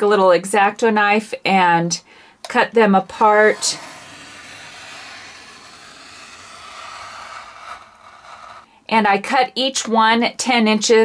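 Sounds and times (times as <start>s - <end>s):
craft knife slicing through leather: 3.2s - 8.7s.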